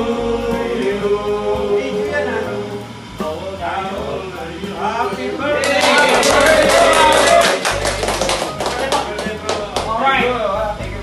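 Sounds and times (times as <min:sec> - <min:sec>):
music with deep bass: 0:00.0 - 0:11.0
people clapping: 0:05.6 - 0:10.0.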